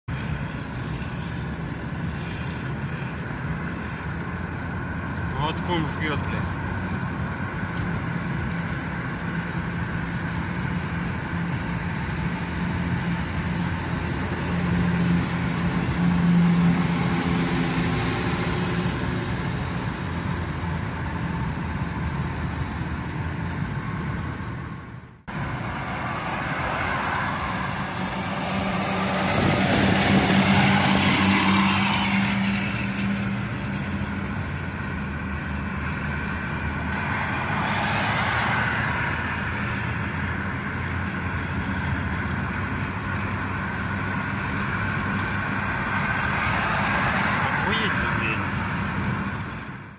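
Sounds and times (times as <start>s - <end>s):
engine drone: 0.1s - 49.9s.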